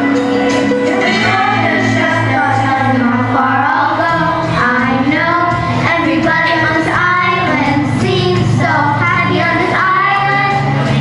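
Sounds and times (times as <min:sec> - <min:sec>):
musical accompaniment: 0:00.0 - 0:11.0
girls singing into microphones: 0:00.8 - 0:11.0.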